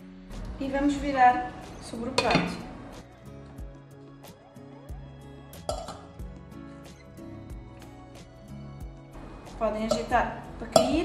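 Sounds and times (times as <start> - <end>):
acoustic background music: 0.0 - 11.0
metal mould clinking on glass: 9.9 - 11.0.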